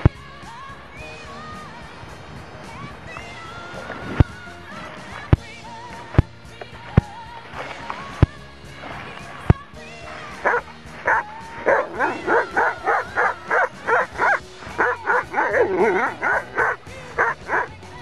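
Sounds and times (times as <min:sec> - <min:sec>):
background music with drum hits: 0:00.0 - 0:18.0
dog barking: 0:10.4 - 0:17.8.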